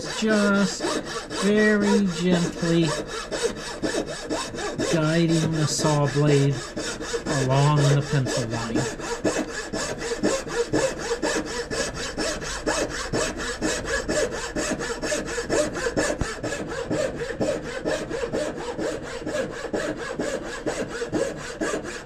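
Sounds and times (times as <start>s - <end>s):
hand saw rasping through wood: 0.0s - 22.0s.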